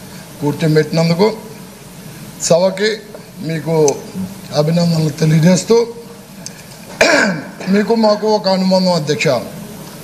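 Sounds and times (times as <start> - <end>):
man speaking: 0.4 - 1.6, 2.4 - 6.2, 7.2 - 9.6
man clearing his throat: 6.9 - 7.7.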